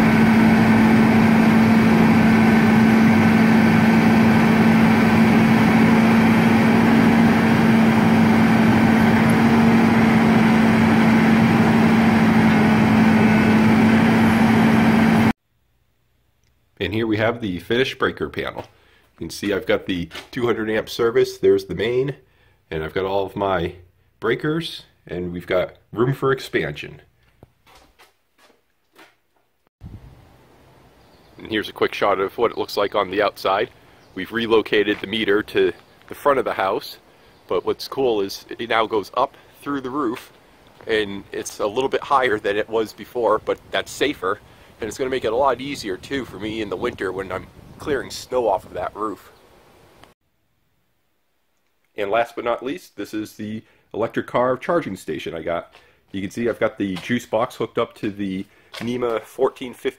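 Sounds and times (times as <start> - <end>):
truck engine idling: 0.0 - 15.3
low outdoor background noise: 29.8 - 46.0, 46.7 - 59.9.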